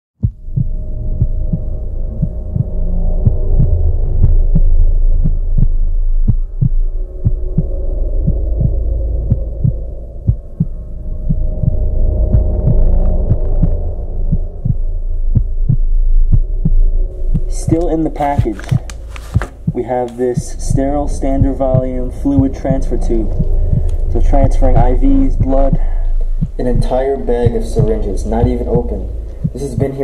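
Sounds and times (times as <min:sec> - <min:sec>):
low droning hum: 0:00.2 - 0:30.0
low heartbeat-like pulse: 0:00.2 - 0:30.0.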